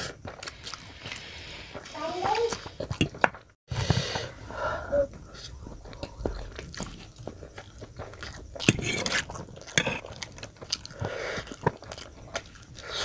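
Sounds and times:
wet chewing and biting: 0.0s - 3.5s, 5.2s - 13.0s.

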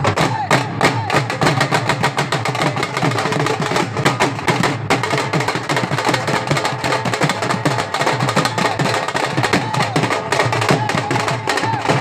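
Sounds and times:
dhol drums beating: 0.0s - 12.0s.

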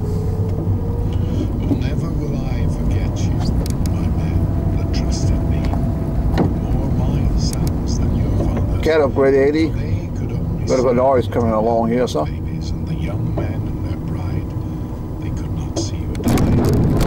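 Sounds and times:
car engine and tyre rumble: 0.0s - 17.0s.

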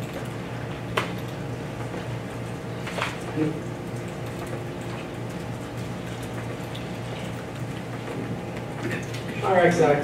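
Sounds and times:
low room hum: 0.0s - 10.0s.

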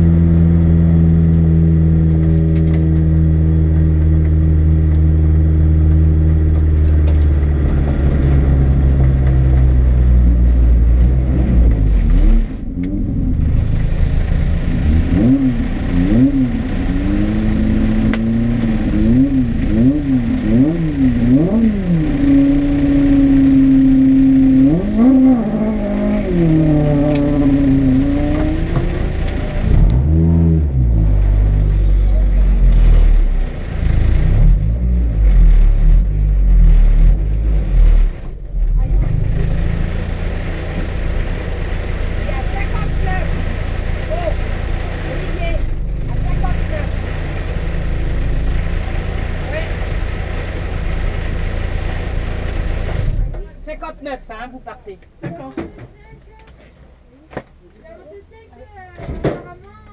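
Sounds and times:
car engine revving: 0.0s - 54.0s.

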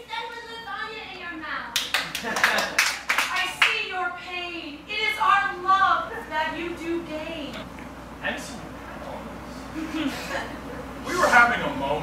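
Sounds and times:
hands clapping: 1.7s - 3.8s.

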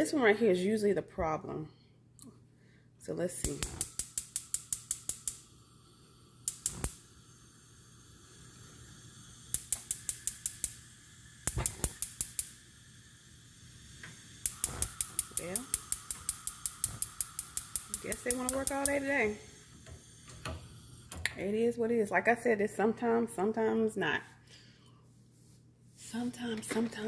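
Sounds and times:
gas stove igniter clicking: 3.4s - 5.5s, 6.4s - 7.1s, 8.5s - 21.4s.

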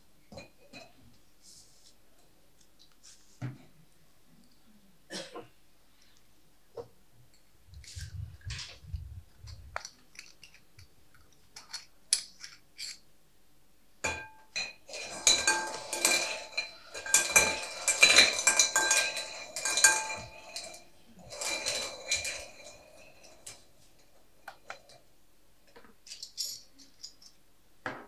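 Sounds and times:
balls clattering in glass bowl: 14.1s - 25.0s.

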